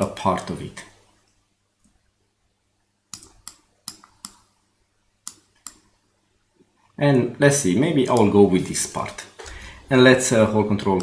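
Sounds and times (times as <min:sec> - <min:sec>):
computer mouse and key clicks: 0:03.1 - 0:04.5, 0:05.2 - 0:05.9.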